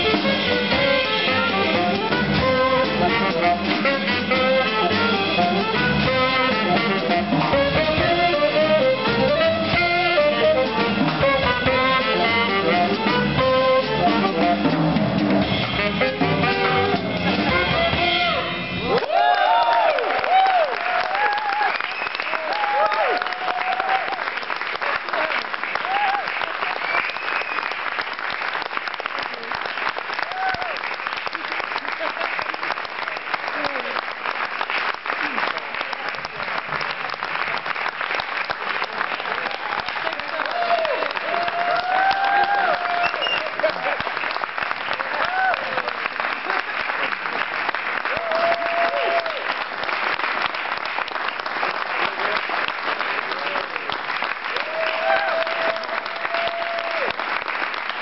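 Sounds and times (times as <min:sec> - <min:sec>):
crowd shouting and cheering: 0:15.0 - 0:24.4, 0:25.0 - 0:27.0, 0:30.2 - 0:30.8, 0:39.3 - 0:44.2, 0:44.8 - 0:49.6, 0:52.0 - 0:57.5
audience applauding: 0:18.7 - 0:58.0.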